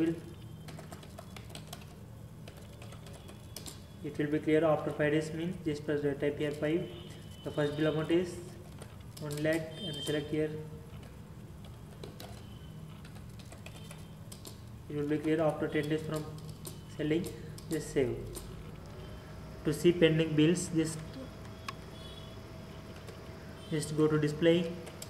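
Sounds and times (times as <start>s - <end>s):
keyboard typing clicks: 0.0s - 4.0s, 7.8s - 10.3s, 10.9s - 19.0s, 24.7s - 25.0s.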